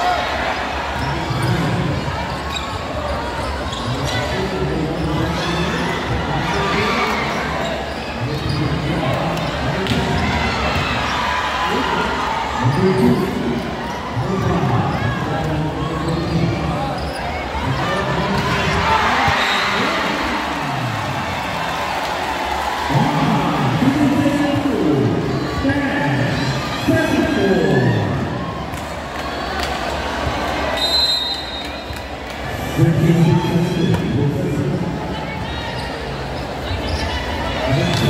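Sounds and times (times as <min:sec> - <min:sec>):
crowd shouting and talking: 0:00.0 - 0:38.0.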